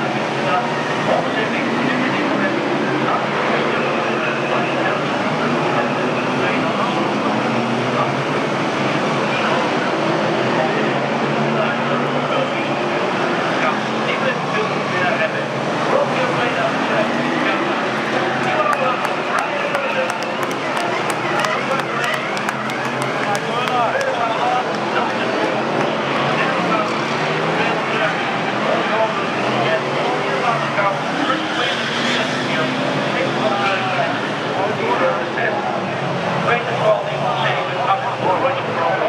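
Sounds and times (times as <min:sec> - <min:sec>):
babble of crowd voices: 0:00.0 - 0:39.0
race car engines: 0:00.0 - 0:39.0.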